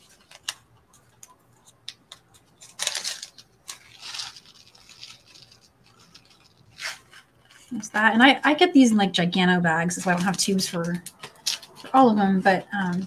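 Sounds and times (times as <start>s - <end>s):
plastic bag crinkling: 0.0s - 8.2s, 9.8s - 13.0s.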